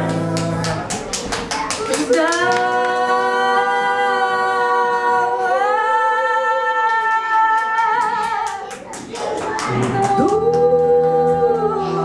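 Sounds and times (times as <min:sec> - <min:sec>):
women singing held note: 0:09.6 - 0:12.0.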